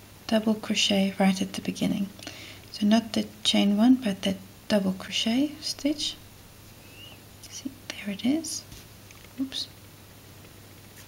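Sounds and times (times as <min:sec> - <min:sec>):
steady low hum: 0:00.0 - 0:11.0
woman speaking: 0:00.3 - 0:02.1, 0:02.8 - 0:06.2, 0:07.4 - 0:08.7, 0:09.4 - 0:09.8.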